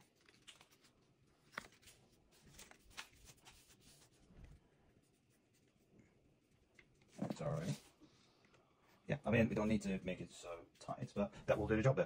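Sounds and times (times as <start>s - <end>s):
hands rubbing tape on skin: 0.0s - 7.9s.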